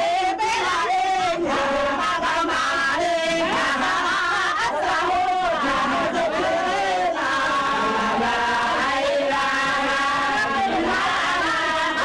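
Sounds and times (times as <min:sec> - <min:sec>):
group of voices chanting: 0:00.0 - 0:12.0.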